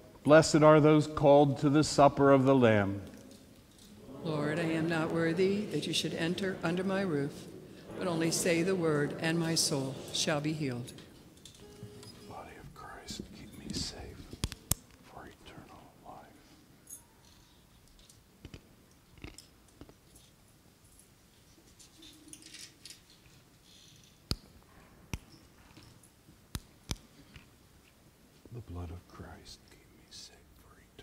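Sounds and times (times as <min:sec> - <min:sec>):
faint whispered voice: 0:12.2 - 0:16.7, 0:28.5 - 0:31.0.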